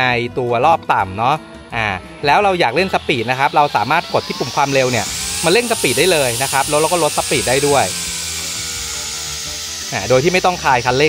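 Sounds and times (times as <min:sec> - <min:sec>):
background music: 0:00.0 - 0:11.0
brush cutter motor whine: 0:02.0 - 0:11.0.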